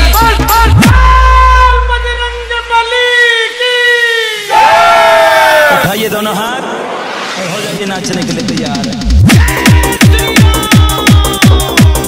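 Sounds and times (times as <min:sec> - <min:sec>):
crowd shouting battle cry: 0:04.5 - 0:05.9.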